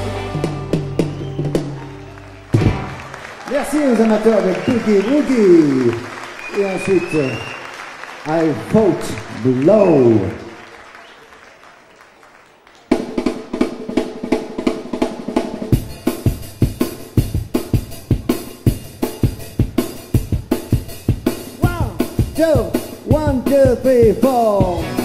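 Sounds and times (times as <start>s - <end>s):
drums and amplified guitars: 0.0s - 3.2s, 12.9s - 25.0s
person making announcement: 3.5s - 6.0s, 8.3s - 10.4s, 21.6s - 24.9s.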